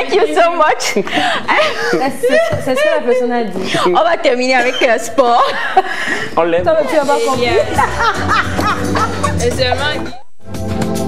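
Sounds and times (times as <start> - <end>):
woman speaking: 0.0 - 5.6, 6.7 - 7.8, 9.3 - 10.2.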